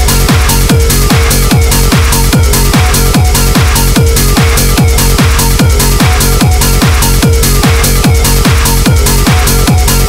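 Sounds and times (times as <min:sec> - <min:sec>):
hard dance music: 0:00.0 - 0:10.0
heavy kick drum: 0:00.0 - 0:10.0.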